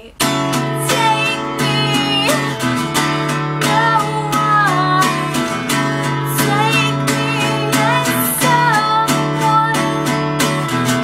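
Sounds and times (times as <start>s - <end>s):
woman singing: 0.0s - 11.0s
acoustic guitar strumming: 0.2s - 11.0s.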